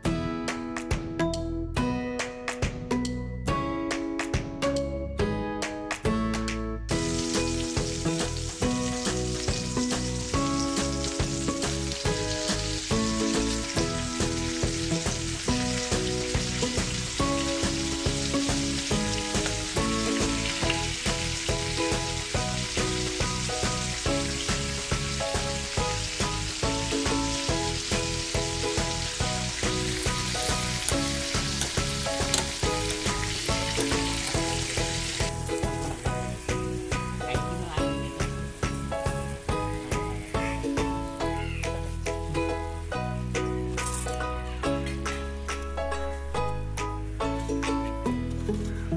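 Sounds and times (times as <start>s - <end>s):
background music with beat: 0.0s - 48.9s
food sizzling in hot oil: 6.9s - 46.8s.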